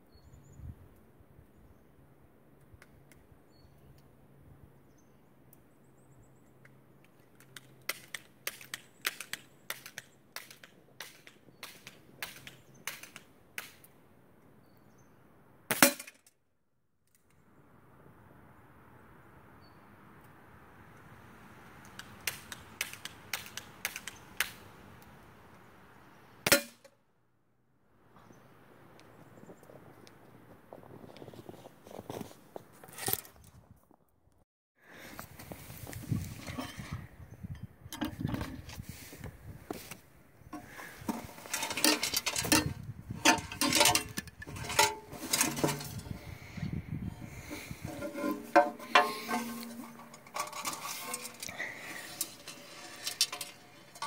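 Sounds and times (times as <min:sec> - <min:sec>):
footsteps crunching in snow: 0:30.5 - 0:33.4.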